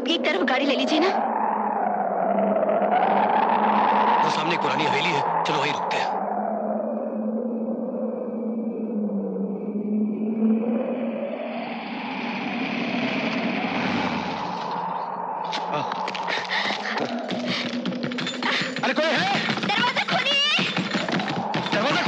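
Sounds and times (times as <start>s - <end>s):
moaning howling wind: 0.0s - 22.0s.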